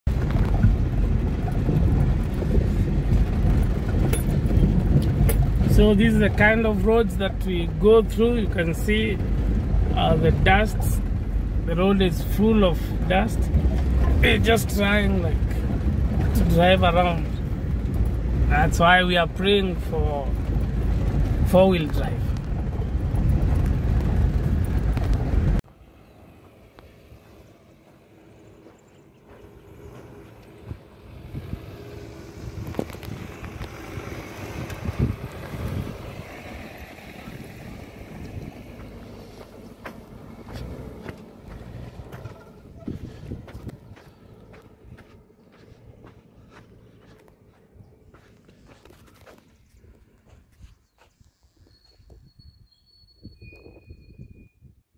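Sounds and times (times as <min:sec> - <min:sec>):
loud in-car road noise: 0:00.0 - 0:54.5
minivan driving on dirt road: 0:00.0 - 0:54.6
bird chirping: 0:49.5 - 0:54.6.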